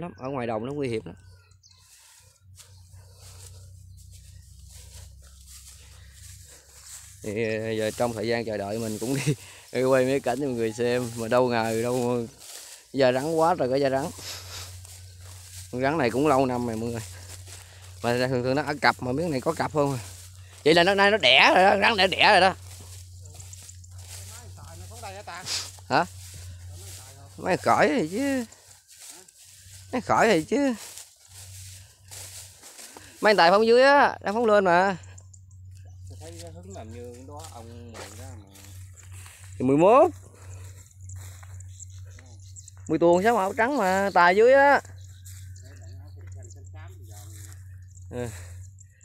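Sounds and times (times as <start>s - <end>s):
man speaking: 0.0s - 1.2s, 7.2s - 12.4s, 13.0s - 14.4s, 15.6s - 17.2s, 18.0s - 28.6s, 29.9s - 30.9s, 33.2s - 35.1s, 36.1s - 38.8s, 39.5s - 40.4s, 42.2s - 44.9s
steady low hum: 1.2s - 33.2s, 34.2s - 49.0s
man calling out loudly: 20.6s - 22.6s.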